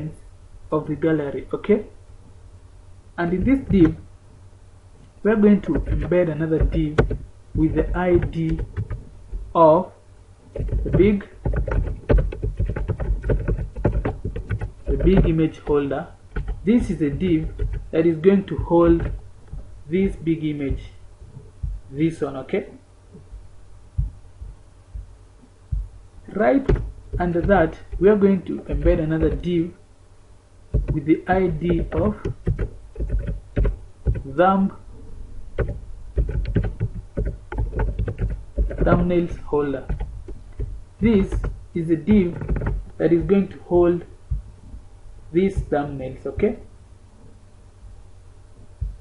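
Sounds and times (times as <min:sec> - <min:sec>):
faint low hum: 0:00.0 - 0:49.0
dull low thumps: 0:03.3 - 0:04.1, 0:05.4 - 0:09.6, 0:10.5 - 0:18.0, 0:18.6 - 0:22.0, 0:23.1 - 0:29.7, 0:30.7 - 0:34.3, 0:44.1 - 0:45.0, 0:48.6 - 0:49.0
computer keyboard typing: 0:05.5 - 0:09.1, 0:10.6 - 0:20.8, 0:26.3 - 0:29.7, 0:30.7 - 0:34.3, 0:35.6 - 0:43.4.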